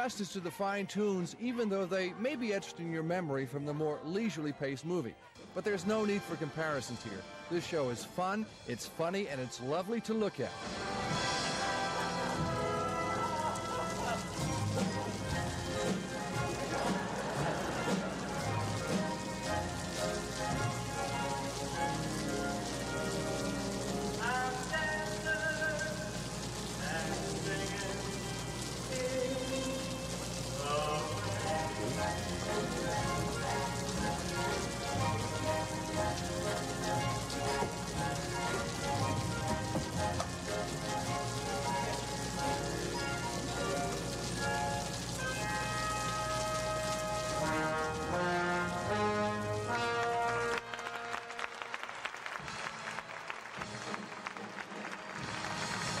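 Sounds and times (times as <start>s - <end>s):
orchestral show music: 0.0s - 56.0s
hiss of stage rain falling: 5.4s - 56.0s.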